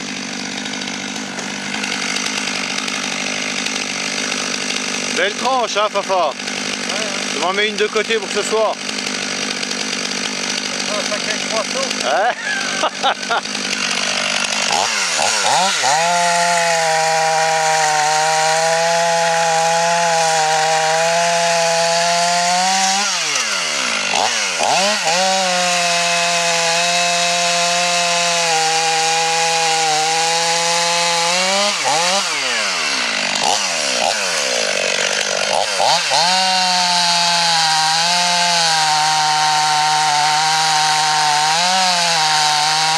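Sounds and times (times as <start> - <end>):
chainsaw idling: 0.0 - 42.9.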